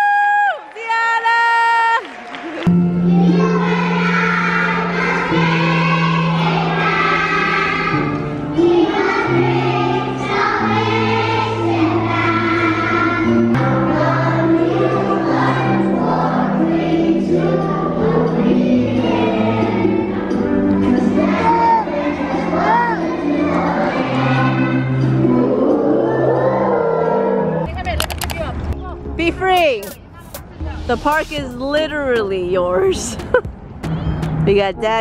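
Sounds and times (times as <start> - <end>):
children singing: 3.1 - 27.6.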